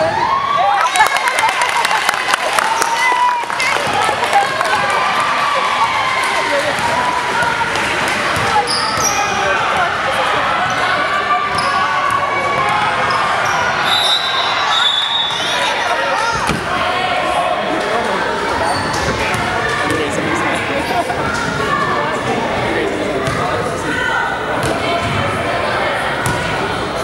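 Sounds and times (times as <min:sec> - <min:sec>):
sneakers squeaking: 0:08.4 - 0:09.8, 0:10.6 - 0:16.8, 0:18.4 - 0:21.8, 0:23.2 - 0:23.6.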